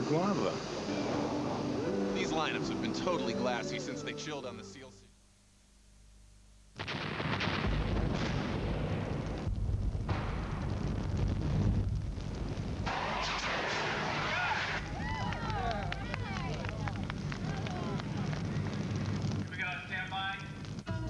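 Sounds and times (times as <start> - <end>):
explosion and blast sounds: 6.8 - 20.8
deep rumble: 7.6 - 21.0.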